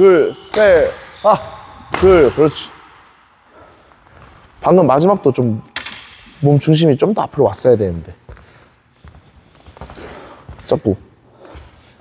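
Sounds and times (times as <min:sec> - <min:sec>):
soft footsteps on court floor: 0:07.8 - 0:12.0.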